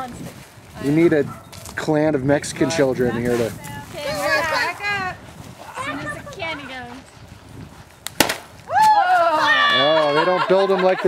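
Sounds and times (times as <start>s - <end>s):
stick whacking a pinata: 8.0s - 8.9s.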